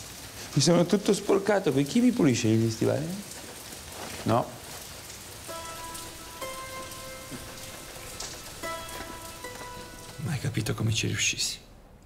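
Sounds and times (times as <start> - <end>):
steady rain falling: 0.0 - 12.0
soft film score music: 5.4 - 11.6.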